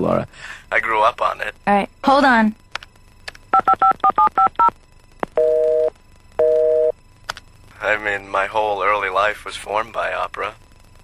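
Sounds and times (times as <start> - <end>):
keypad dialing beeps: 3.6 - 4.7
telephone busy signal: 3.6 - 4.7, 5.4 - 6.9.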